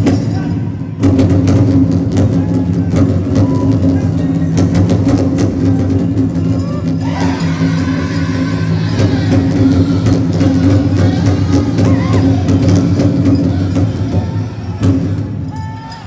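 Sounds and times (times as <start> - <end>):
big drum beat: 0.0 - 16.0
higher voices singing: 5.6 - 16.0
chorus singing: 6.6 - 16.0.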